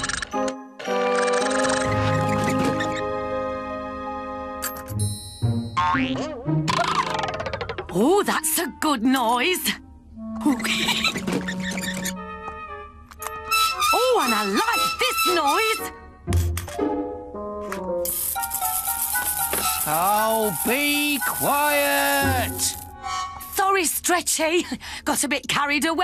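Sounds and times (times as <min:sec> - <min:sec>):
cartoon boing sound effects: 0:05.8 - 0:07.9.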